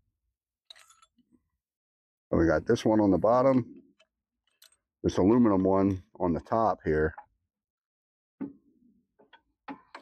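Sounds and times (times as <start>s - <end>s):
faint metal rods clinking: 0.7s - 1.2s.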